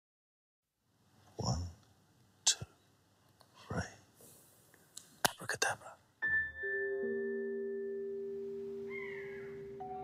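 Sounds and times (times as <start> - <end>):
man whispering: 2.4 - 2.8, 3.5 - 4.2, 5.2 - 6.1.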